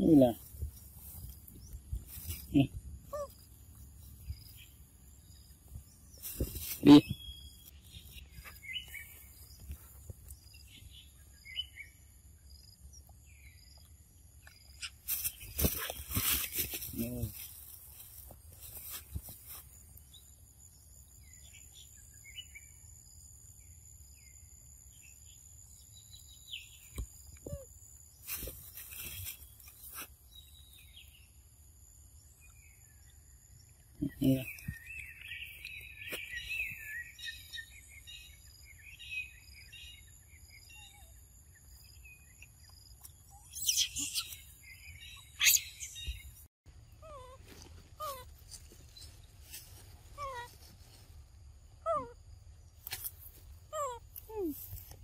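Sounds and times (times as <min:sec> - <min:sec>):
chirping calls: 0:43.2 - 0:46.4.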